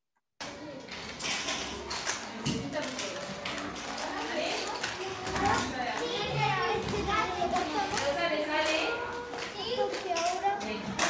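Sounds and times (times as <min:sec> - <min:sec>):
children chattering: 0:00.4 - 0:11.0.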